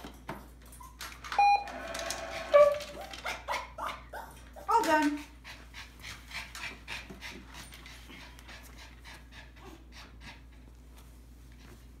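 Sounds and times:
dog panting: 0:03.5 - 0:12.0.

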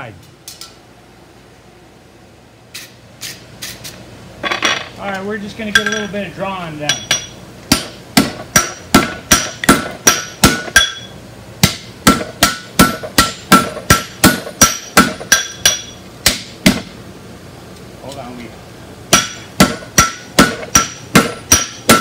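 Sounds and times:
hammer striking steel on anvil: 0:06.8 - 0:16.9, 0:19.1 - 0:22.0.

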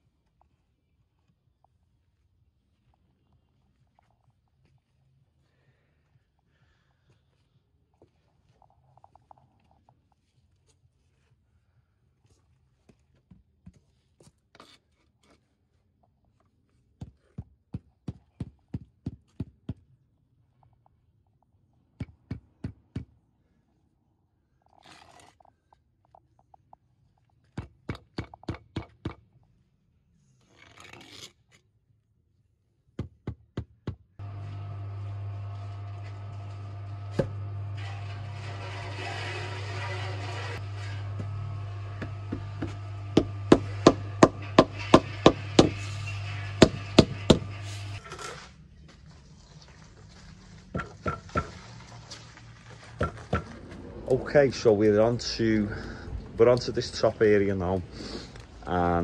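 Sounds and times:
brief scraping: 0:35.6 - 0:41.2.

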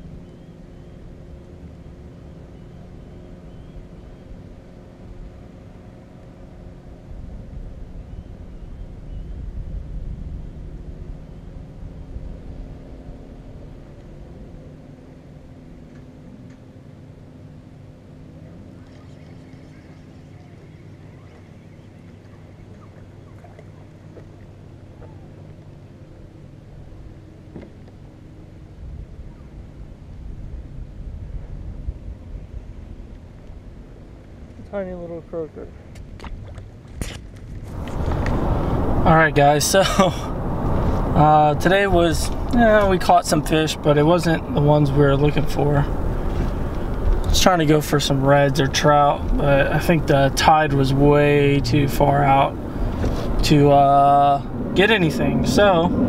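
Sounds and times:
low rumble: 0:00.0 - 0:16.4, 0:28.3 - 0:56.0
engine drone: 0:00.0 - 0:56.0.

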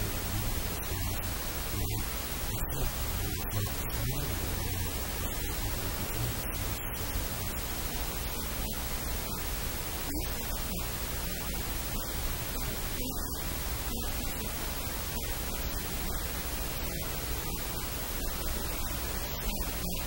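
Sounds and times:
steady static hiss: 0:00.0 - 0:20.0.

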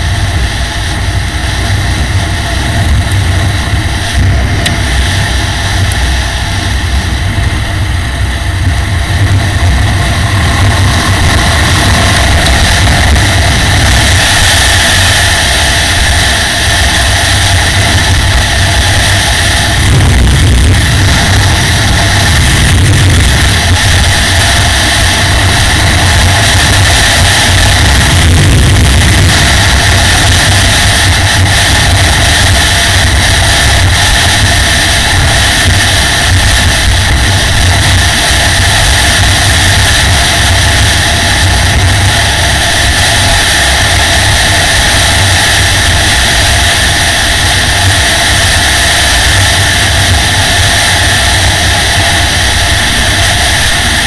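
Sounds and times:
motorcycle engine running: 0:00.0 - 0:54.0
wind rushing over microphone: 0:00.0 - 0:54.0.

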